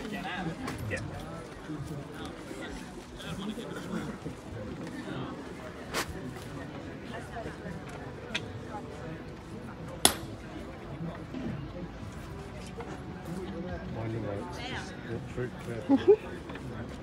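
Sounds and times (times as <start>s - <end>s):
faint voices talking outdoors: 0.0s - 17.0s.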